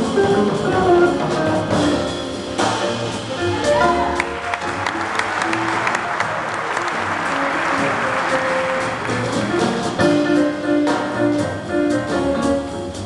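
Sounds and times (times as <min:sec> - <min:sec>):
jazz band playing: 0:00.0 - 0:13.0
audience applauding: 0:03.6 - 0:10.1.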